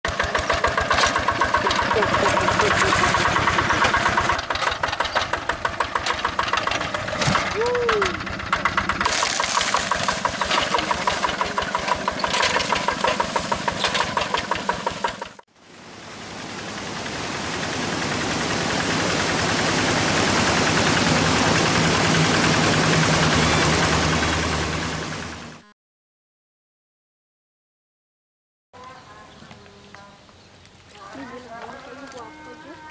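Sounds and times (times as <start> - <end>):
diesel engine chugging: 0.0 - 25.7.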